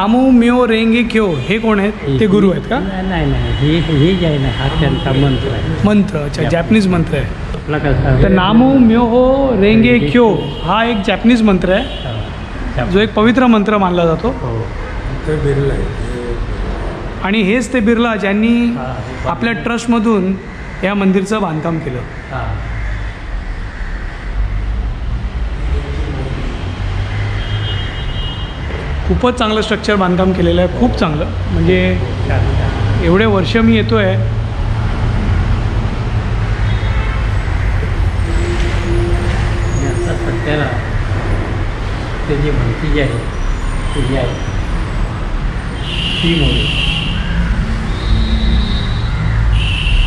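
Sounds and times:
indistinct voices: 0.0 - 23.2, 25.4 - 27.0, 28.6 - 49.6
low rumble of road traffic: 0.0 - 50.0.

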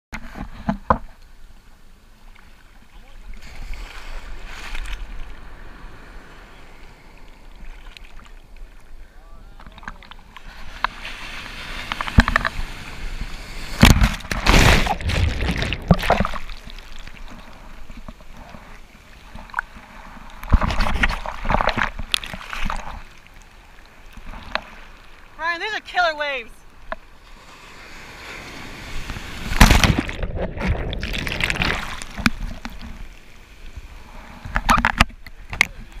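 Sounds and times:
sea water sloshing and splashing: 2.2 - 9.0, 9.6 - 25.5, 26.7 - 36.0.

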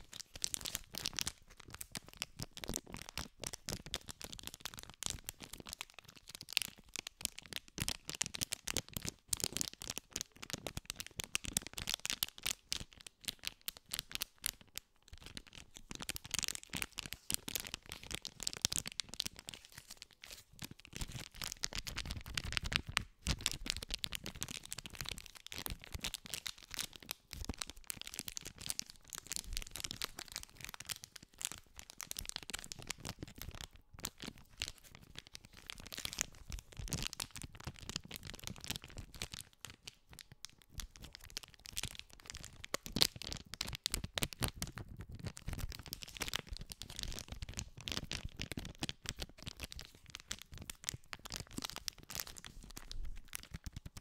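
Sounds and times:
packet crinkling: 0.0 - 54.0.

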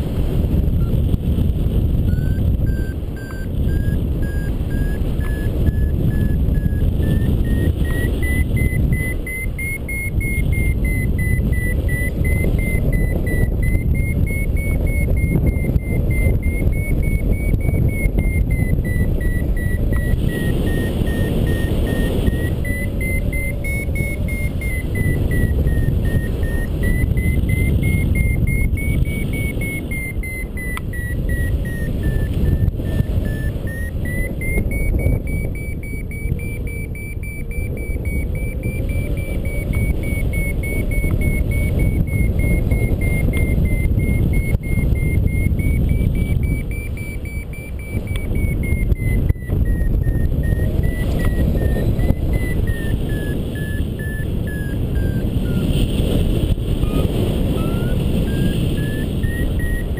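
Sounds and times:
variometer beeping: 0.0 - 59.9
wind rumble on microphone: 0.0 - 59.9.

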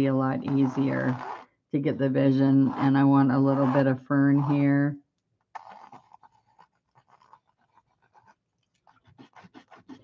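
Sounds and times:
pencil sketching on paper: 2.3 - 4.8, 5.6 - 10.0.

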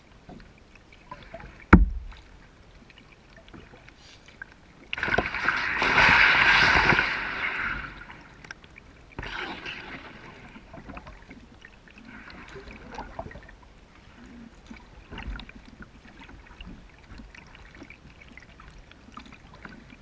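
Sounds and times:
paddle stroke splashing water: 0.2 - 19.9
sharp knock: 1.7 - 2.1.

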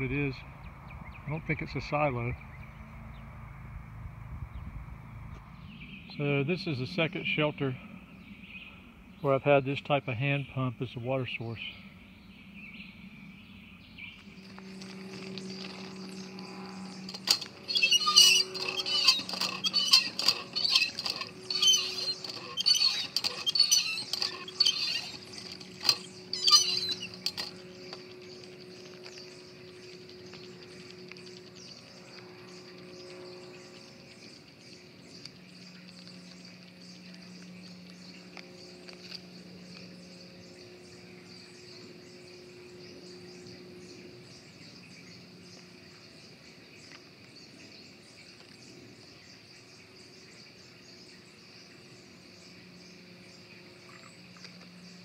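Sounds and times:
woodland insects droning: 0.0 - 55.0.

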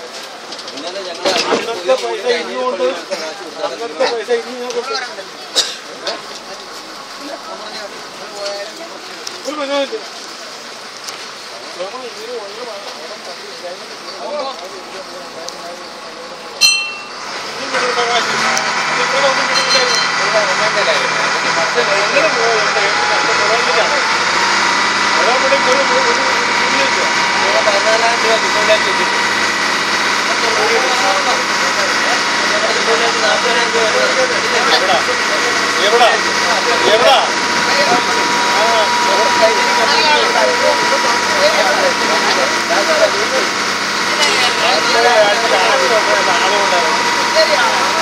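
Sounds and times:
voices talking: 0.0 - 48.0
boat engine running: 10.0 - 48.0.

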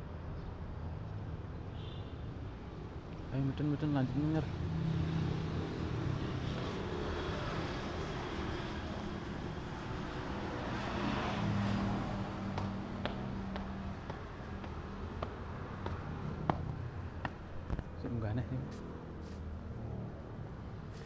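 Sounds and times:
footsteps on concrete stairs: 11.8 - 18.0.

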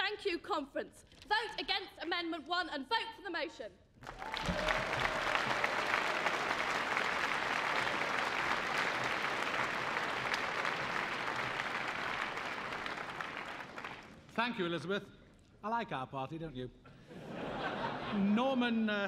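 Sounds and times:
large audience applauding: 4.0 - 14.3.

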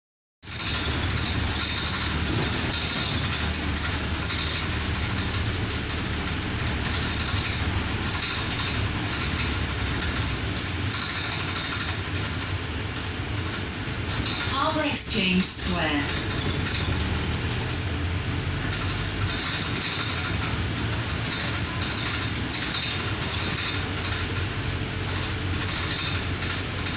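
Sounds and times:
bus engine drone: 0.4 - 26.9
road and body noise: 0.4 - 26.9.

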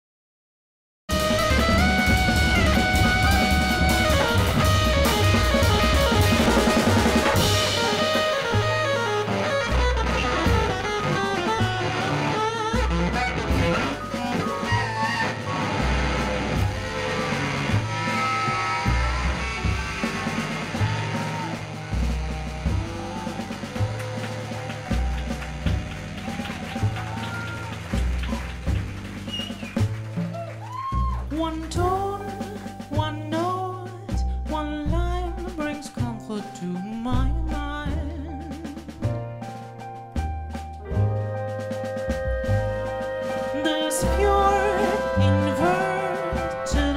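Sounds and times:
electric guitar: 1.1 - 27.6
double bass: 1.1 - 46.9
drum kit: 1.1 - 46.9
piano: 1.1 - 46.9.

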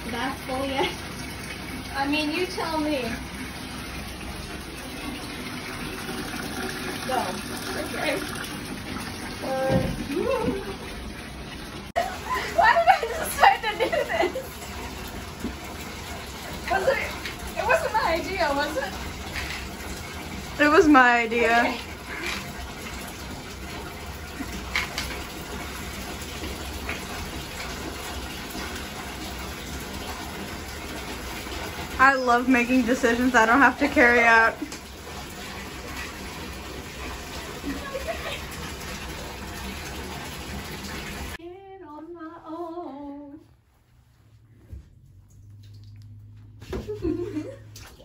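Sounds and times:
tap water running into bathtub: 0.0 - 41.4, 44.7 - 48.0.

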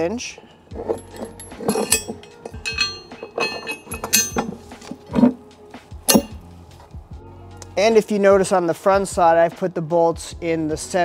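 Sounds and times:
metal bracket clinking: 0.4 - 5.4, 6.0 - 6.5
metal knocking against wood: 0.8 - 5.4, 6.1 - 6.4.

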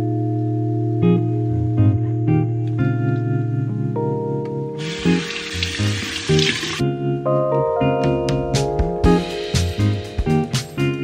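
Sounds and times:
background music: 0.0 - 11.0
tap water splashing into hands: 4.8 - 6.8.

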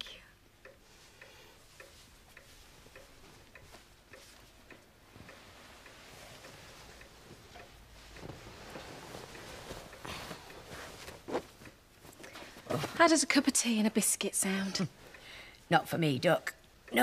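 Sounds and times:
clock ticking: 0.0 - 11.0, 13.0 - 17.0
bedclothes rustling: 0.8 - 14.0.

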